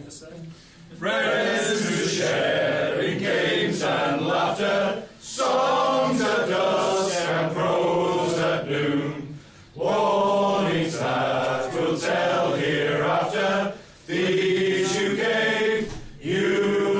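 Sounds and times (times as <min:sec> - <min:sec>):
men singing a cappella: 0:01.0 - 0:16.9.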